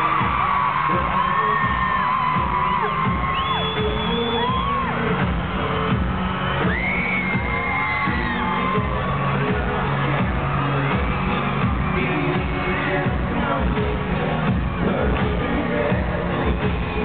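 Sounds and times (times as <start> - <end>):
fans screaming shrilly: 0.0 - 17.0
live pop ballad with beat: 0.0 - 17.0.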